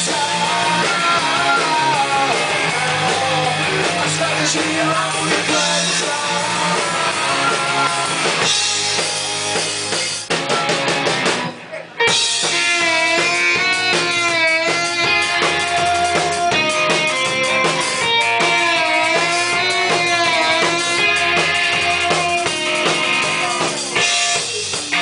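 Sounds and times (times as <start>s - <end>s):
rock band playing: 0.0s - 25.0s.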